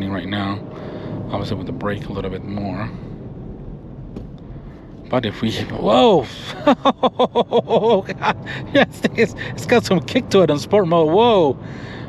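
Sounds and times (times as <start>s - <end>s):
road noise inside car: 0.0s - 12.0s
man laughing: 6.3s - 9.6s.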